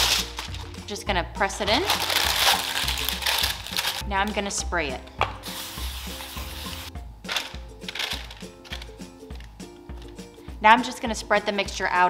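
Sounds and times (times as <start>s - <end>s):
aerosol cooking spray hissing: 5.4s - 6.9s.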